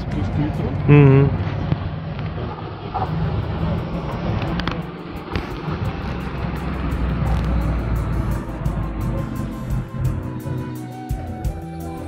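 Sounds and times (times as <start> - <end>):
vehicle passing: 0.0 - 10.7
city traffic rumble: 0.0 - 12.0
music playing: 3.1 - 12.0.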